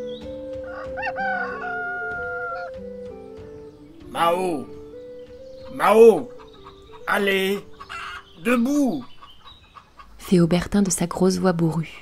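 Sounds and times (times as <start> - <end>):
gentle background music: 0.0 - 12.0
rooster crowing: 0.6 - 2.8.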